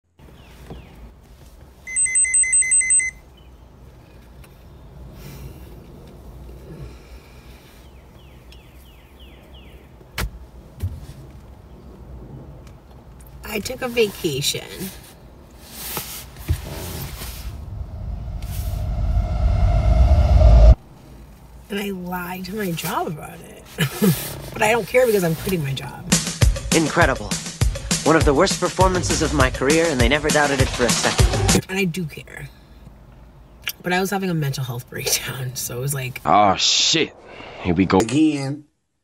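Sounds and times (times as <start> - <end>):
car rumble: 3.2 - 26.2.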